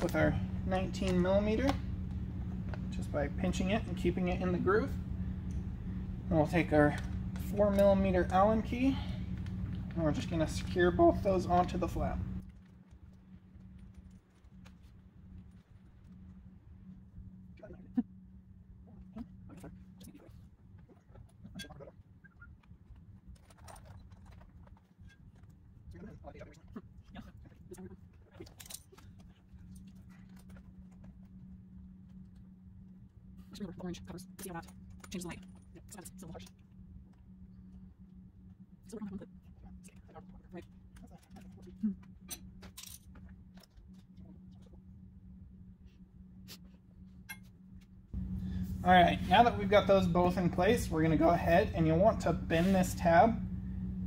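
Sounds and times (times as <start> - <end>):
faint steady hum: 0.0 - 54.0
man speaking: 48.8 - 53.4.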